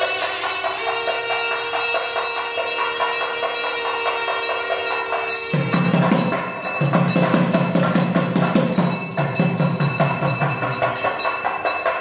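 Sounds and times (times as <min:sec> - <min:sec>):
brass hand bell ringing rapidly: 0:00.0 - 0:12.0.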